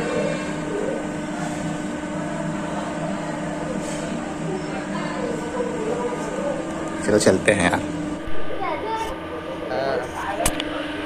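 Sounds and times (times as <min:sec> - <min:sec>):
machine-like hum: 0:00.0 - 0:11.0.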